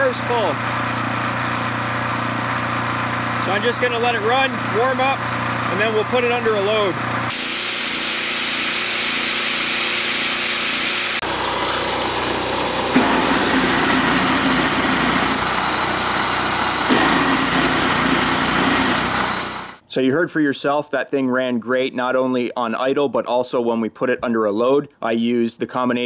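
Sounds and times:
angle grinders whining: 0.0s - 19.8s
generator engine running: 0.0s - 19.8s
electric starter cranking: 7.0s - 19.8s.

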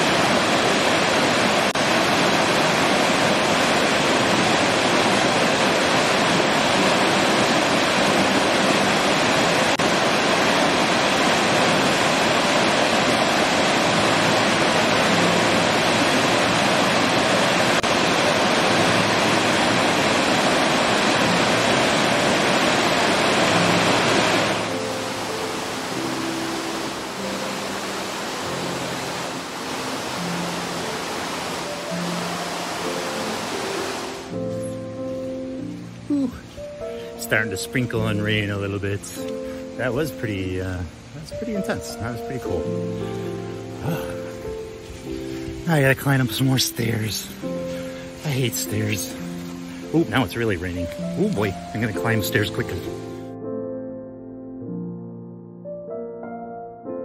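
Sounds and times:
waterfall rushing: 0.0s - 53.4s
soft background music: 3.3s - 57.0s.

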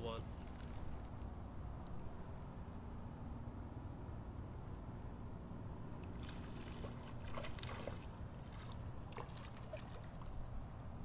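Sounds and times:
fish splashing in water: 6.2s - 10.4s.

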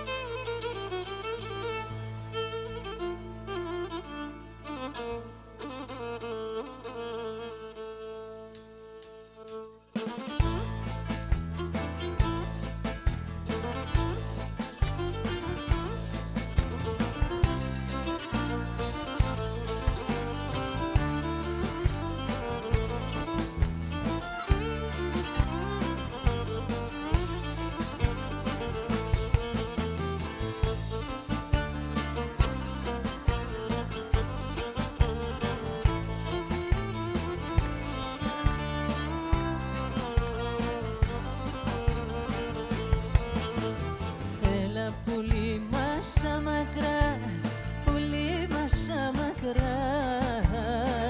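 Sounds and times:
bowed folk fiddle: 0.0s - 51.0s
band with drums and bass: 9.5s - 51.0s.

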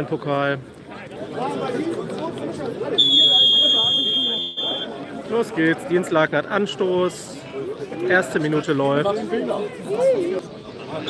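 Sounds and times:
crowd chatter: 0.0s - 11.0s
referee's whistle blast: 3.0s - 4.9s.

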